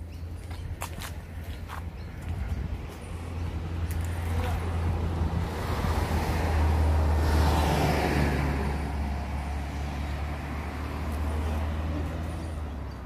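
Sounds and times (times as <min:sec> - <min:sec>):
car passing by: 0:03.6 - 0:12.9.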